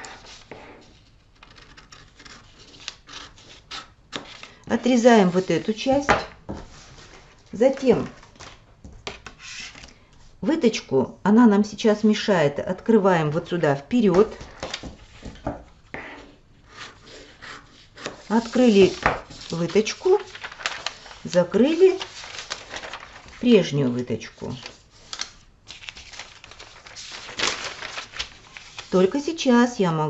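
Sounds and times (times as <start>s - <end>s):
paper rustle: 0.0s - 10.0s, 14.1s - 15.6s, 16.8s - 29.3s
scissors cutting paper: 1.4s - 4.3s
handling scissors and paper: 17.9s - 29.2s.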